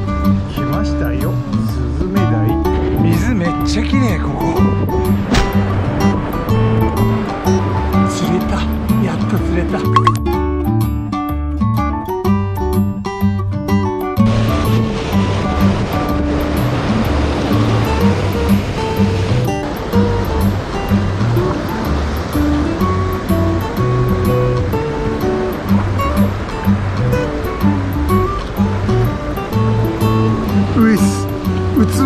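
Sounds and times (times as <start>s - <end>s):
background music with bass line: 0.0s - 32.0s
surf breaking on rocky shore: 2.6s - 10.1s, 14.1s - 32.0s.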